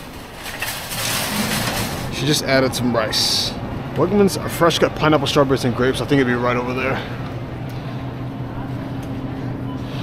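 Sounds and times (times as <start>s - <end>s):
cart basket rattling: 0.0s - 2.3s
shopping cart wheels rolling: 0.0s - 2.6s.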